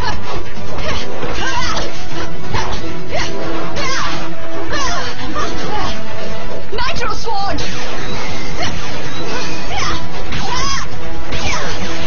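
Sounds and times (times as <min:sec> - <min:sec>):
loud background music: 0:00.0 - 0:12.0.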